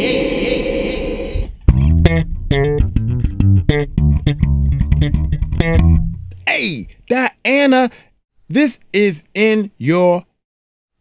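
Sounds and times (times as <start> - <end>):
electric bass guitar plucked notes: 1.6 - 6.5.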